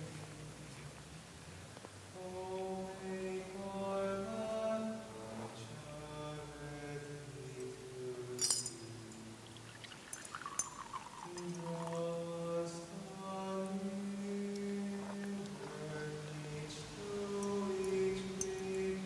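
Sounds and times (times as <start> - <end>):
slow chant of held notes: 2.1 - 9.5, 11.2 - 19.0
sharp clink of glass or metal: 8.4 - 9.0.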